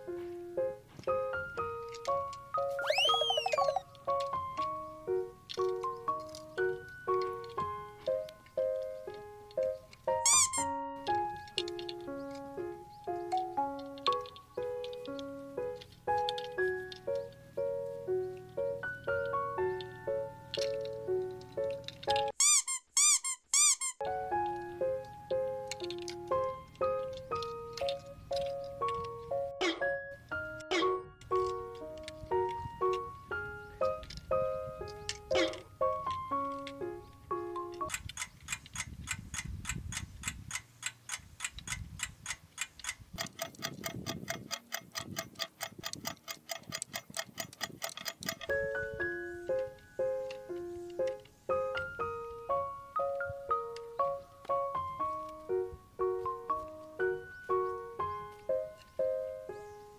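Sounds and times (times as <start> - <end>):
simple background tune: 0.0 - 22.3, 24.0 - 37.9, 48.5 - 59.9
loud squeaky sound effects: 2.7 - 3.8, 10.2 - 10.7, 22.4 - 24.0
clock ticking: 37.9 - 48.5.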